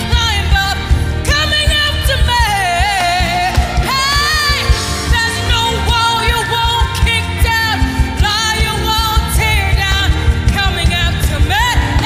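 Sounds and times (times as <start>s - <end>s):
gospel band with singers: 0.0s - 12.0s
lead vocal singing: 0.0s - 12.0s
steady drum beat: 0.0s - 12.0s.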